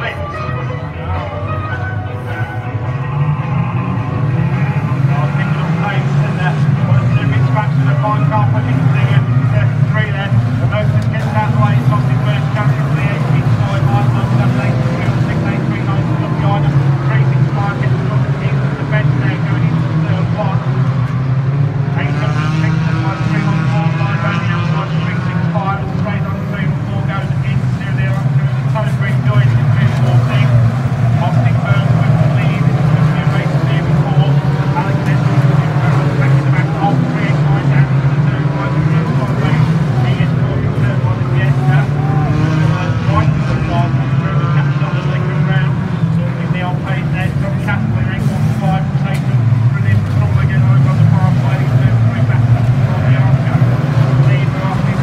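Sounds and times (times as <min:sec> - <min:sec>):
race car engines: 0:00.0 - 0:55.0.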